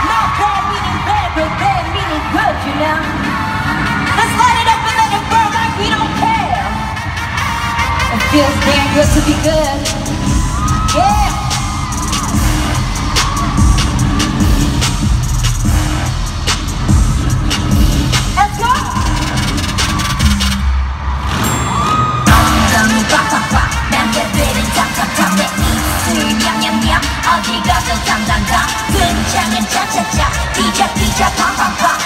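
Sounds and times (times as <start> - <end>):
heavy bass beat: 0.0 - 20.9, 22.2 - 32.0
amplified live pop music: 0.0 - 32.0
person singing: 22.3 - 32.0.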